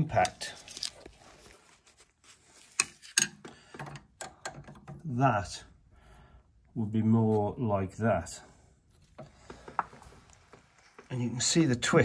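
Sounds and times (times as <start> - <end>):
light clicks and knocks: 9.2 - 11.3.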